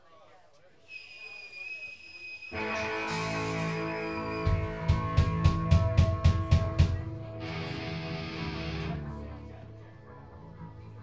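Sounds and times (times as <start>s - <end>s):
drums beating: 2.6s - 8.8s
electric guitars and bass chord: 2.6s - 10.0s.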